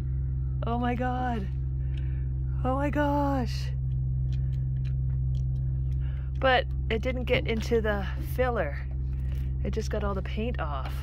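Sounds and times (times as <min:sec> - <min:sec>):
steady low motor hum: 0:00.0 - 0:11.0.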